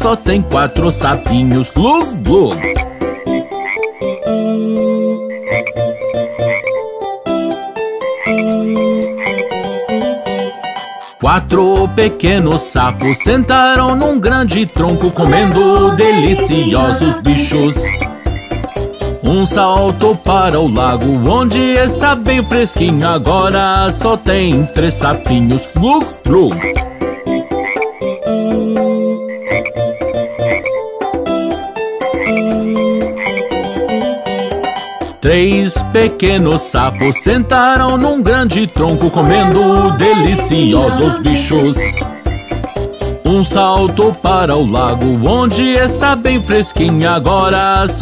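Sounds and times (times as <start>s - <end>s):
keyboard children's music: 0.0s - 48.0s
cartoon frog croaks: 2.2s - 6.8s, 8.1s - 9.7s, 14.9s - 18.7s, 26.0s - 30.8s, 32.0s - 34.0s, 39.0s - 42.7s.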